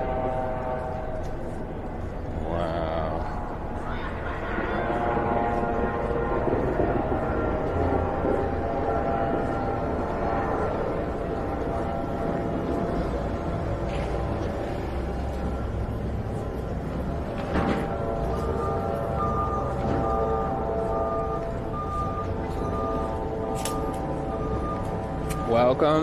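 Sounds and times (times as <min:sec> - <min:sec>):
low street rumble: 0:00.0 - 0:26.0.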